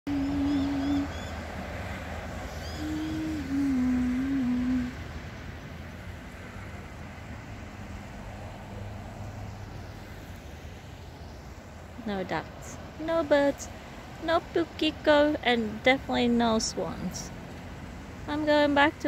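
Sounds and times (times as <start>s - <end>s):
bird chirping: 0.1s - 1.4s, 2.5s - 3.9s
low hum-like tone: 2.7s - 5.6s.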